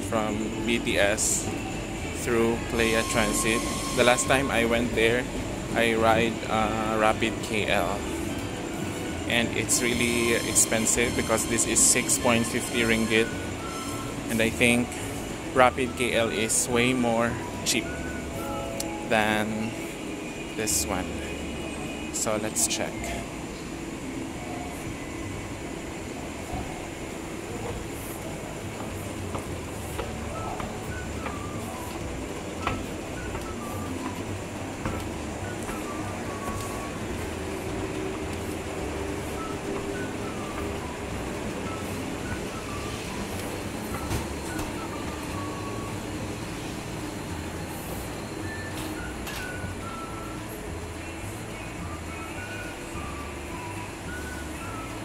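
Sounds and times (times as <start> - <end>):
escalator rumble and hum: 0.0 - 55.0
faint music: 0.0 - 55.0.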